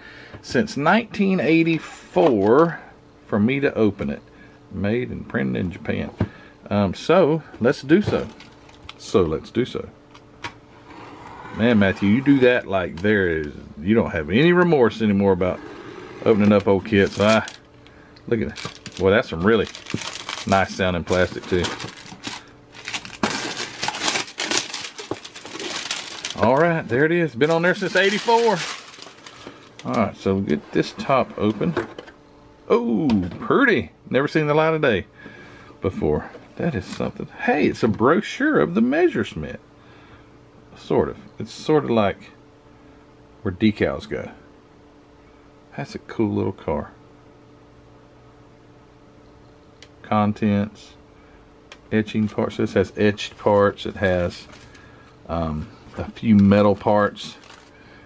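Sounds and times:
low hum: 0:04.3 - 0:34.1
shrink wrap crinkling: 0:08.1 - 0:09.0, 0:16.2 - 0:30.2, 0:54.0 - 0:54.9, 0:55.9 - 0:57.8.

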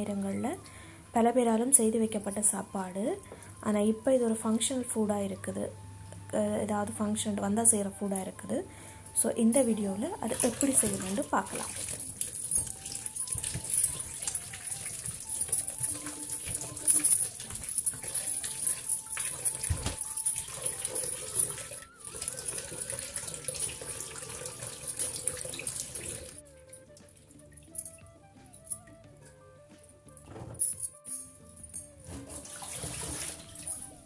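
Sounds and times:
soft background music: 0:00.0 - 0:34.0
vegetables washed by hand: 0:09.5 - 0:27.5, 0:32.0 - 0:34.0
glass bangles clinking: 0:10.5 - 0:27.0, 0:27.6 - 0:28.9, 0:30.6 - 0:34.0.

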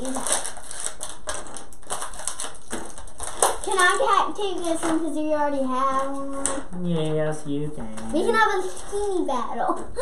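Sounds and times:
plastic packaging crinkling: 0:00.0 - 0:06.6, 0:08.0 - 0:09.4.

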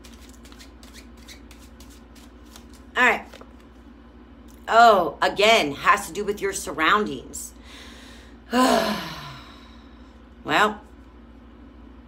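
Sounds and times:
playing cards being shuffled: 0:00.0 - 0:03.9.

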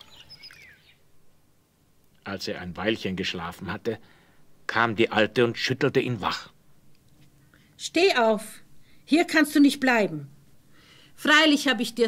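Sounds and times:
faint songbird twittering: 0:00.0 - 0:01.1.

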